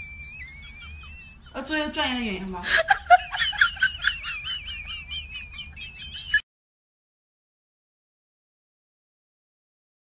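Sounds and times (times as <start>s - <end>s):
high warbling chirps: 0.0s - 6.4s.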